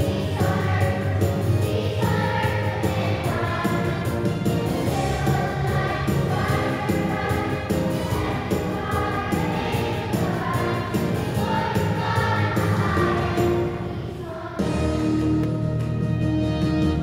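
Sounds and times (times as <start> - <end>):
instrumental accompaniment with beat: 0.0 - 13.8, 14.6 - 17.0
children's choir singing: 0.0 - 15.7.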